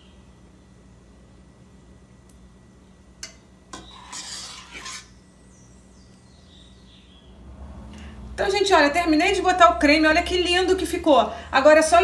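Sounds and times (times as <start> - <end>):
spoon scraping bowl: 3.7 - 5.2.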